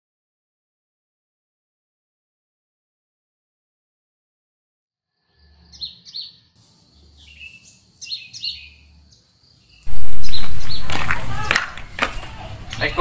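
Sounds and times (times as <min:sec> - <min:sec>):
small birds chirping: 0:05.2 - 0:13.0
sudden loud sound: 0:09.9 - 0:11.4.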